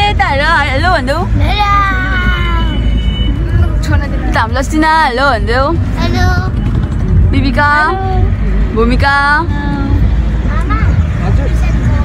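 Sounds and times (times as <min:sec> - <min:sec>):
people's voices: 0:00.0 - 0:12.0
van engine and tyres rumble: 0:00.0 - 0:12.0.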